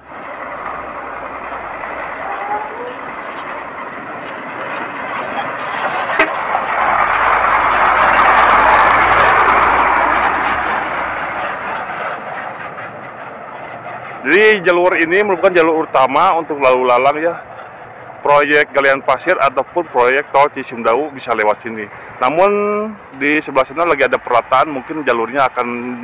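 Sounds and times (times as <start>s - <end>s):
tyres crunching on gravel: 0.0s - 21.8s
truck engine driving past: 0.0s - 26.0s.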